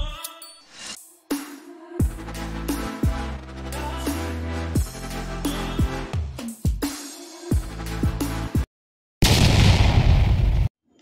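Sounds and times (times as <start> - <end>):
explosion blast: 9.2 - 10.7.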